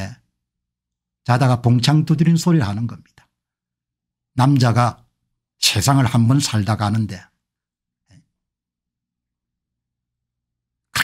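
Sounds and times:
man's voice: 0:01.3 - 0:03.2, 0:05.6 - 0:07.3.

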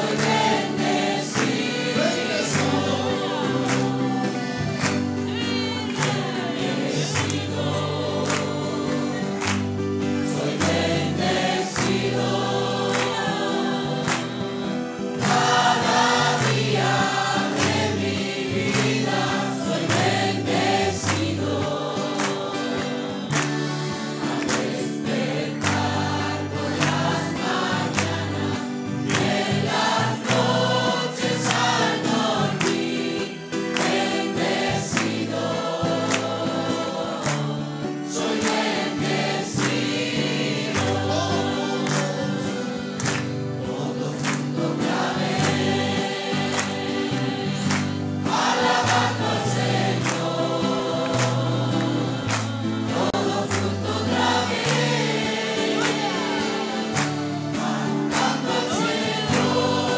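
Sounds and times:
congregation singing: 0:00.0 - 0:59.9
instrumental accompaniment: 0:00.0 - 0:59.9.

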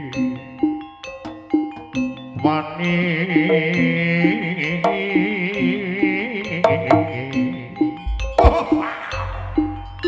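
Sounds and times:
gamelan ensemble: 0:00.0 - 0:10.0
struck metallophone notes: 0:00.0 - 0:10.0
wavering lead melody: 0:00.0 - 0:10.0.

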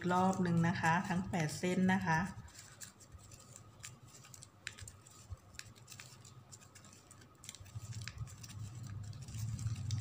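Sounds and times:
ribbon crinkling and clicking: 0:00.0 - 0:10.0.

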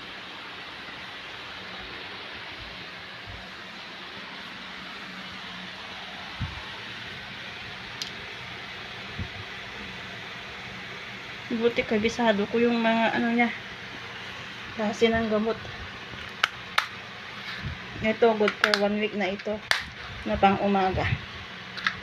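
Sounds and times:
air conditioner hiss: 0:00.0 - 0:22.0.

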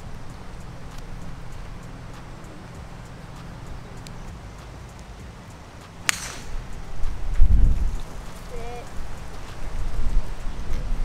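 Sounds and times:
golf club striking ball: 0:05.8 - 0:08.6.

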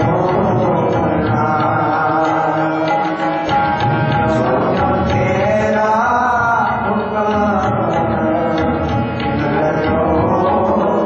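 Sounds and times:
sustained instrumental accompaniment: 0:00.0 - 0:11.0.

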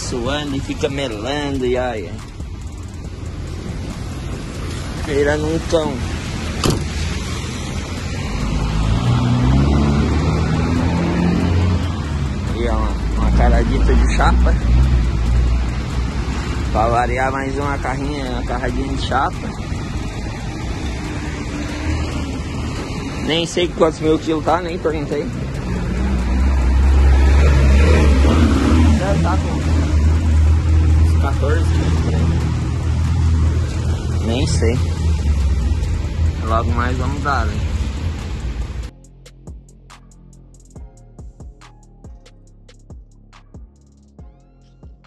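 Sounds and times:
rain and wet road hiss: 0:00.0 - 0:38.9
vehicle engine rumble: 0:00.0 - 0:45.0
truck door shutting: 0:06.6 - 0:07.1.

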